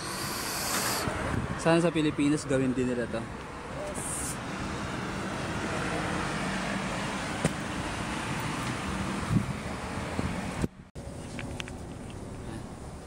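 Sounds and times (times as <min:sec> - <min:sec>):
street traffic: 0:00.0 - 0:13.0.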